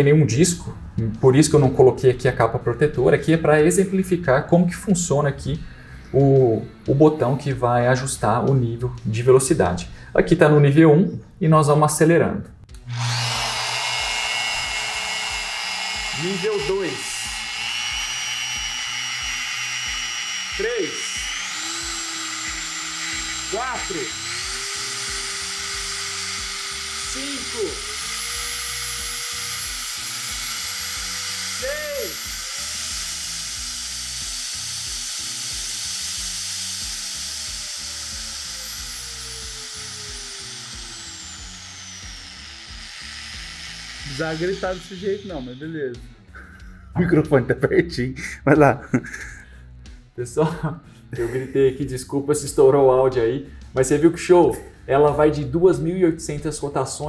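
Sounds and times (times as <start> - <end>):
angle grinder whining: 12.7 - 46.8.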